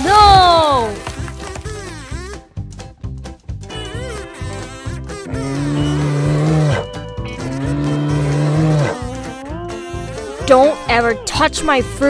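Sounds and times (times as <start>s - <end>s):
background music: 0.0s - 12.0s
animated bear roaring: 4.0s - 10.5s.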